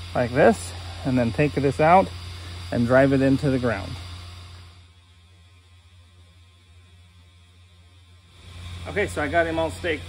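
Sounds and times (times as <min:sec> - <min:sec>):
blower fan humming: 0:00.0 - 0:10.0.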